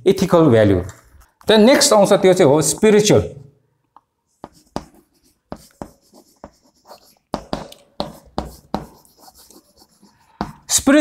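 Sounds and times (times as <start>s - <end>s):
chalk writing on chalkboard: 4.3s - 10.7s.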